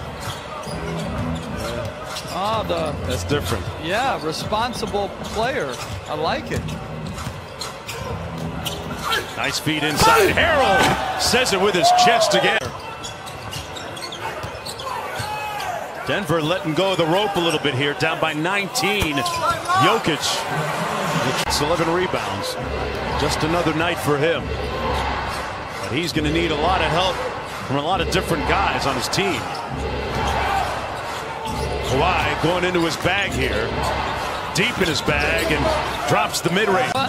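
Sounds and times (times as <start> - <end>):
arena background noise: 0.0 - 37.0.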